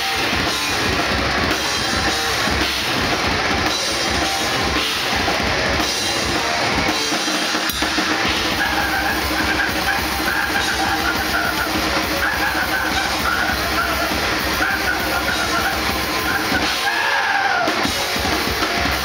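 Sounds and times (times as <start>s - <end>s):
fast pounding drums: 0.0s - 19.0s
grindcore band playing: 0.0s - 19.0s.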